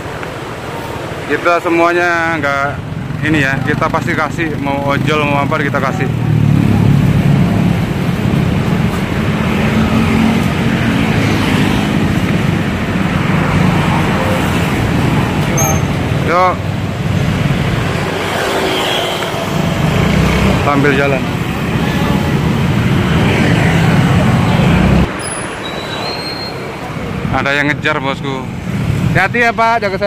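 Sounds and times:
car and motorcycle engines: 0.0s - 30.0s.

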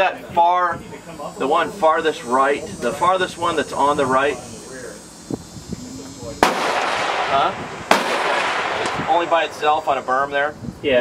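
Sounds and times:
rifle shot with echo: 6.4s - 10.1s.

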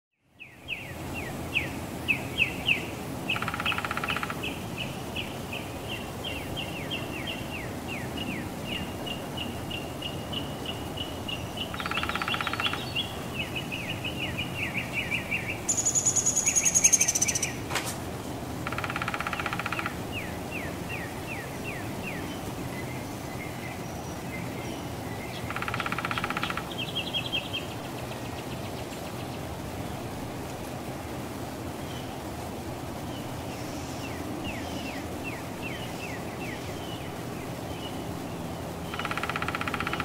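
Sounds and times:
woodpecker drumming: 3.3s - 4.5s, 11.6s - 13.1s, 18.6s - 20.2s, 25.5s - 27.1s, 38.9s - 40.0s.

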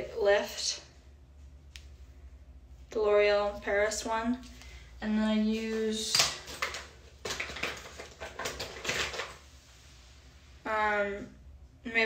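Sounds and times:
makeup products rummaged through: 5.6s - 9.6s.

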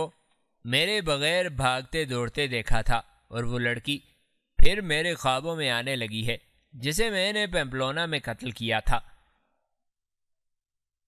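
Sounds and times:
man narrating with echo: 0.0s - 9.2s.

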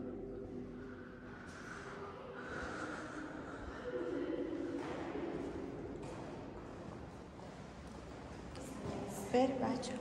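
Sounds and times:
faint indistinct voices: 0.0s - 6.0s
steady background noise: 0.0s - 10.0s.

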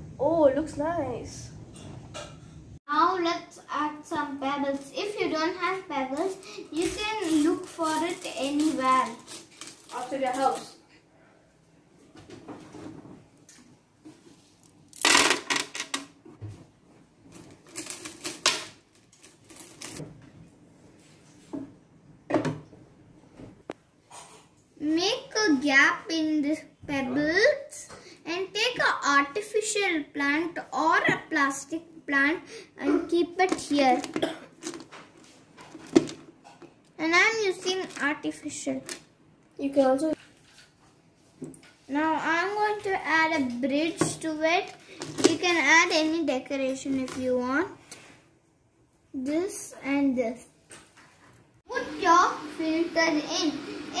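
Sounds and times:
pebbles clattering into plastic tub: 14.9s - 16.0s.

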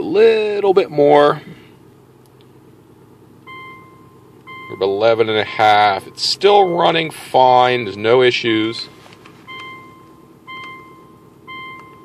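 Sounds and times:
car engine idling faintly: 0.0s - 12.0s
electronic chime beeping: 9.5s - 12.0s.

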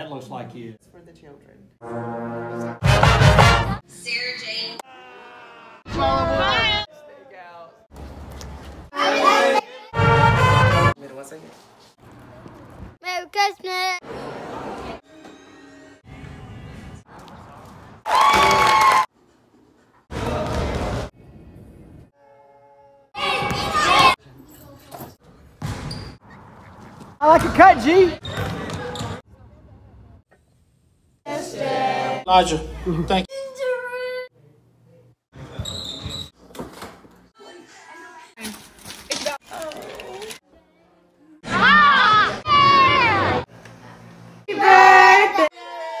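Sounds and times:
children and adults shouting together: 9.0s - 9.9s, 44.5s - 46.0s.

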